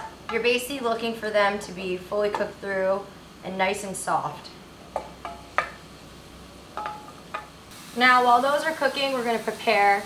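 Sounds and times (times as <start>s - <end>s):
mushrooms sizzling in oil: 0.0s - 10.0s.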